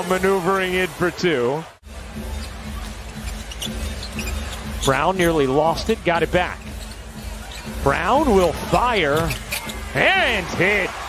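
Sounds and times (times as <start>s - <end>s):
arena music: 0.0s - 11.0s
crowd noise: 0.0s - 11.0s
sneaker squeaks on court: 2.2s - 10.0s.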